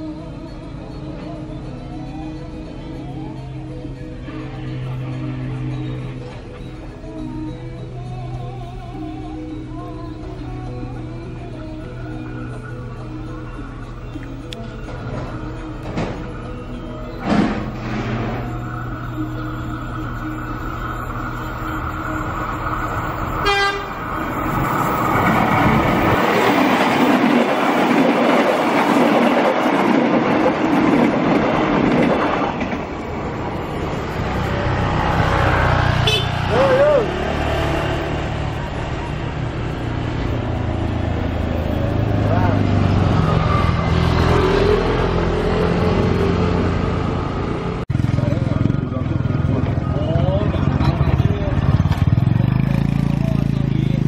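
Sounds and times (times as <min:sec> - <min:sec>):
train rumbling over rails: 0:10.1 - 0:54.0
motorcycle engines running: 0:44.7 - 0:54.0.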